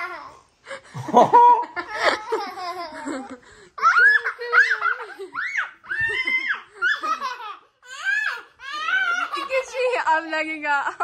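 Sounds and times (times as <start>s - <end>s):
man laughing: 1.0s - 3.4s
girl's high-pitched laughter: 1.1s - 10.0s.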